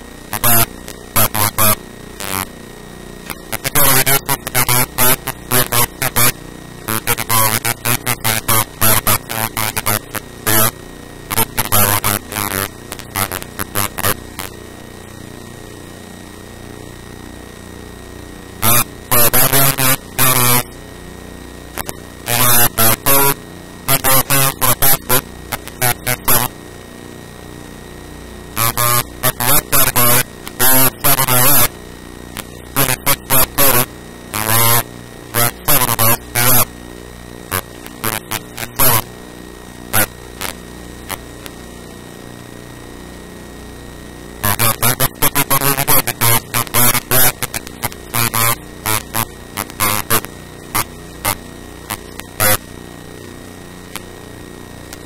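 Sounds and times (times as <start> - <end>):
electrical mains hum: 0.0 - 55.0
man speaking distorted: 0.4 - 2.5, 3.3 - 10.7, 11.3 - 14.2, 18.6 - 20.7, 21.8 - 26.5, 28.6 - 31.7, 32.7 - 34.8, 35.4 - 36.7, 37.5 - 39.1, 40.0 - 40.6, 44.4 - 52.6.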